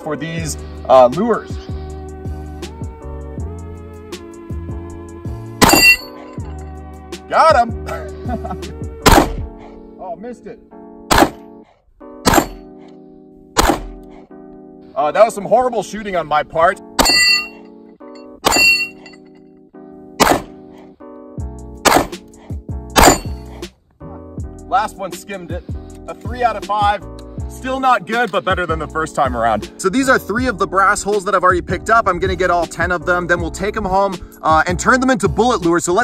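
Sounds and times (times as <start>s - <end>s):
background music: 0.0s - 36.0s
background music with beat: 0.4s - 9.6s
steel target ringing: 5.6s - 6.2s, 12.3s - 12.6s, 17.0s - 17.6s, 18.4s - 19.2s, 23.0s - 23.4s
pistol shot: 9.0s - 9.5s, 11.1s - 11.5s, 12.2s - 12.7s, 13.6s - 14.1s, 20.2s - 20.6s, 21.8s - 22.2s, 23.0s - 23.4s.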